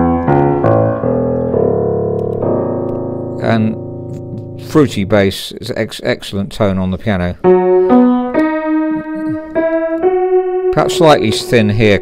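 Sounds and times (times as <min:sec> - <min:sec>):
out of tune piano notes: 0:00.0 - 0:05.3, 0:07.4 - 0:12.0.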